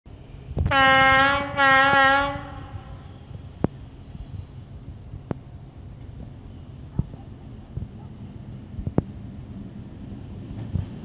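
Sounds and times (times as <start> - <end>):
train horn blasts: 0.6 - 3.2.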